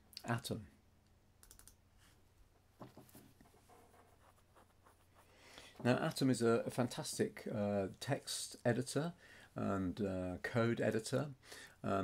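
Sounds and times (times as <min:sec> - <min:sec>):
faint computer clicks: 0:01.4 - 0:01.8.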